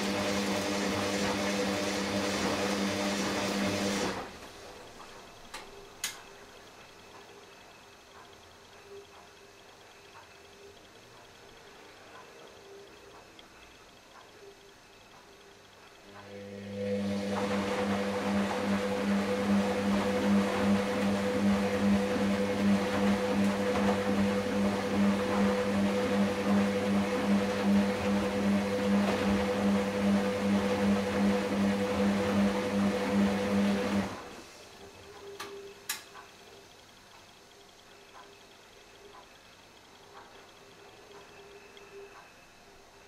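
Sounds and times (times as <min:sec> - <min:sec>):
washing machine humming: 0:00.0 - 0:43.0.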